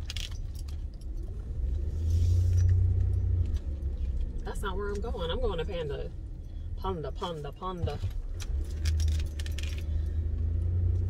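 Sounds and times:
car engine rumble and road noise: 0.0s - 11.0s.

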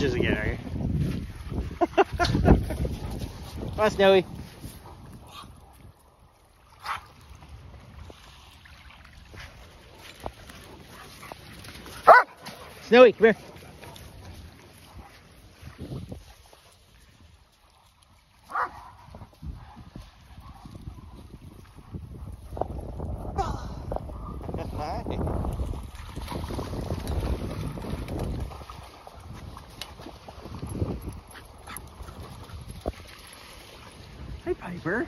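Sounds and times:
wind rumbling on microphone: 0.0s - 35.0s
dog bark: 6.8s - 7.0s, 12.0s - 12.6s, 18.5s - 21.2s.

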